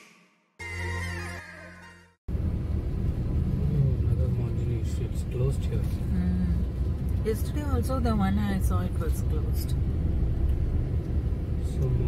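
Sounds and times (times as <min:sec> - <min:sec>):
car driving on road: 0:02.3 - 0:12.0.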